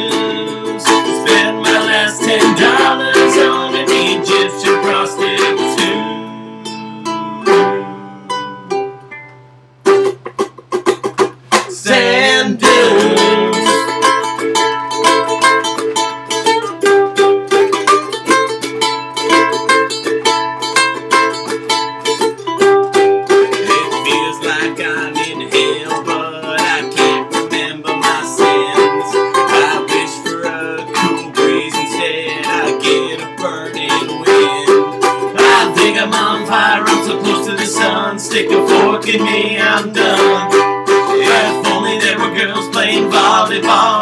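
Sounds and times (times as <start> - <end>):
ukuleles strummed: 0.0 - 44.0.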